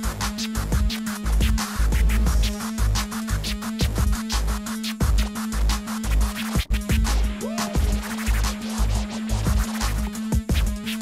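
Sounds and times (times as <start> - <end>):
hip-hop beat with heavy kick drum: 0.0 - 11.0
vinyl scratching: 0.0 - 11.0.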